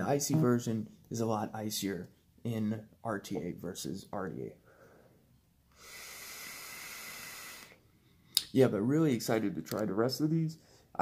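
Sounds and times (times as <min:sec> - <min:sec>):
vape hissing: 0:05.8 - 0:07.8.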